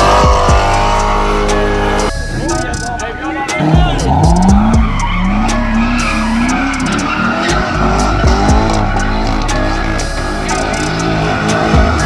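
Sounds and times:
car engine revving: 0:00.0 - 0:12.0
tyres squealing: 0:00.0 - 0:12.0.

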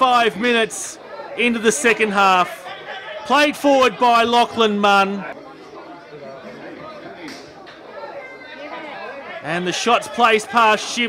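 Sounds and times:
faint chatter of voices: 0:05.2 - 0:11.0.

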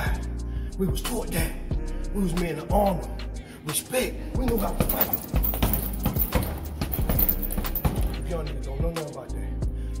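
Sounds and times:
background music: 0:00.0 - 0:10.0
gloves punching heavy bag: 0:04.5 - 0:08.2.

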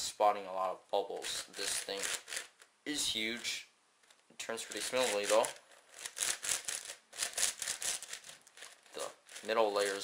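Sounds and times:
puzzle cube clicking turns: 0:01.5 - 0:02.7, 0:04.1 - 0:09.5.

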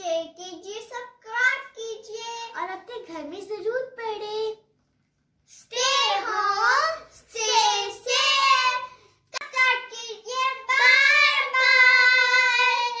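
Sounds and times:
children singing: 0:05.8 - 0:13.0.

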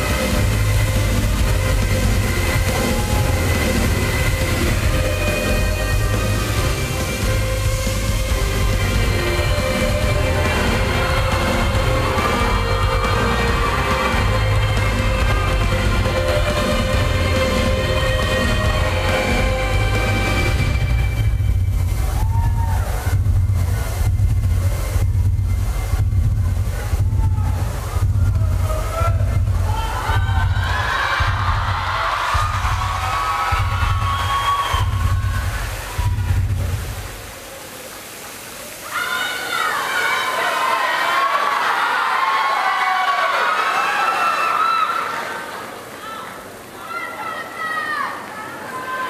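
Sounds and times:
audience cheering and screaming: 0:00.0 - 0:24.1, 0:26.6 - 0:49.0
tense music with pulsing beat: 0:00.0 - 0:37.1
audience shouting: 0:02.1 - 0:07.2, 0:09.1 - 0:20.6, 0:22.0 - 0:23.2, 0:27.0 - 0:36.8, 0:38.7 - 0:49.0.

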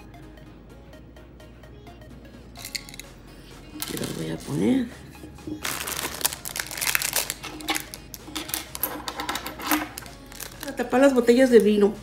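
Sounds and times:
small items clicking and tapping: 0:02.6 - 0:03.1, 0:05.6 - 0:10.8
plastic packaging crinkling: 0:05.5 - 0:11.0.

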